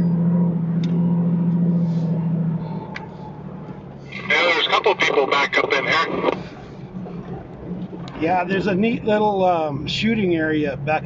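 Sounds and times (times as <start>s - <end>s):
vehicle engine driving: 0.0s - 11.0s.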